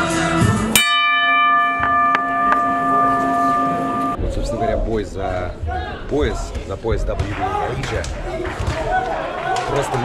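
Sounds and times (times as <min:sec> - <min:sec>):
boxing bell struck with hammer: 0:00.8 - 0:04.2.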